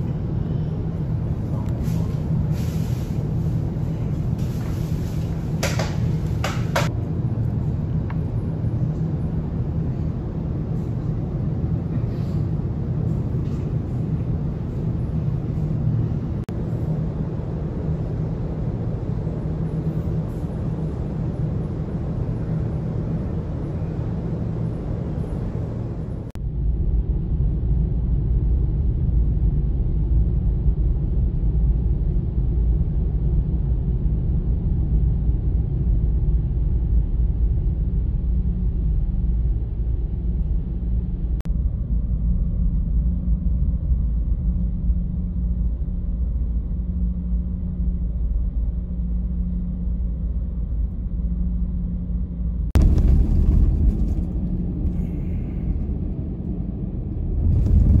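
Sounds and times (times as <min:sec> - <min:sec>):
ship engine rumble: 0:00.0 - 0:58.0.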